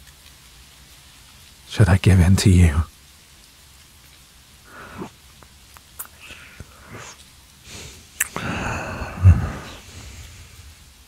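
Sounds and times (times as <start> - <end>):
steady rain hiss: 0.0 - 11.0
soft breath: 4.7 - 5.2, 6.1 - 11.0.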